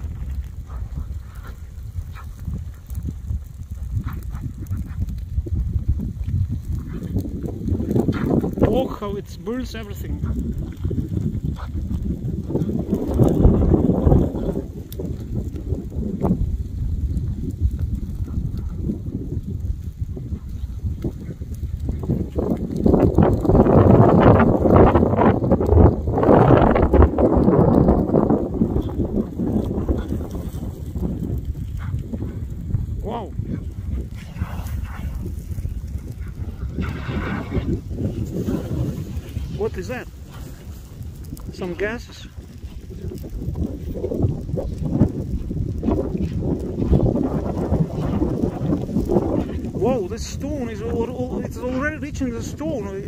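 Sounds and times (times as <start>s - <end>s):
fire crackling and snapping: 0.0s - 53.0s.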